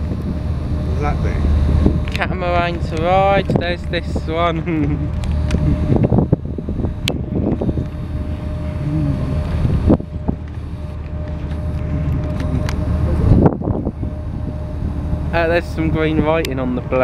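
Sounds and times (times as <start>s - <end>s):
boat engine drone: 0.0s - 17.0s
faint constant hum: 0.0s - 17.0s
wind buffeting microphone: 0.0s - 17.0s.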